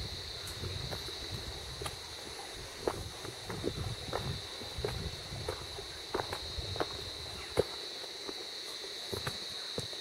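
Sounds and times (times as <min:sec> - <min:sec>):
footsteps on stony path: 0:00.0 - 0:10.0
walking stick knocking on rocks: 0:09.1 - 0:10.0.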